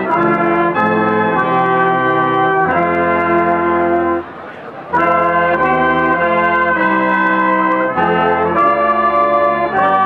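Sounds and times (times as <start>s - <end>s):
brass band playing chords: 0.0s - 10.0s.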